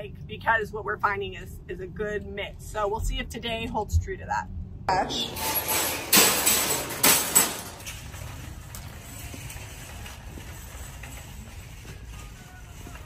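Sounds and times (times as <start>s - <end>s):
shopping cart clattering: 5.2s - 13.0s
cart wheels rattling: 5.4s - 13.0s.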